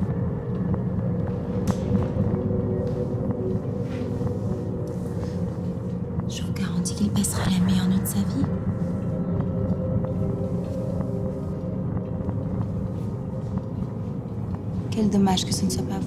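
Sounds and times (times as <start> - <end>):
ambient film score drone: 0.0 - 16.0.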